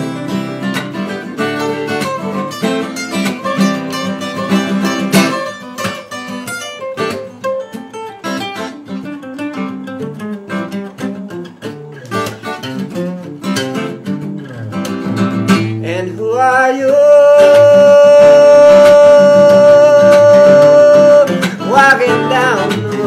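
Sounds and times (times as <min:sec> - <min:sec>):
picked lead guitar line: 0:00.0 - 0:23.0
strummed acoustic guitar chords: 0:00.0 - 0:23.0.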